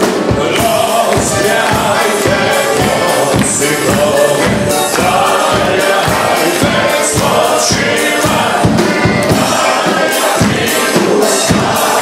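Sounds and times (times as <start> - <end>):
live band playing: 0.0 - 12.0
many voices singing together: 0.0 - 12.0
guests clapping along: 0.1 - 12.0.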